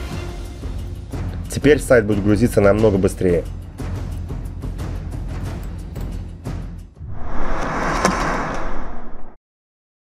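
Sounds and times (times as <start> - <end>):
noisy whoosh: 7.0 - 9.4
sharp hit: 7.0 - 9.4.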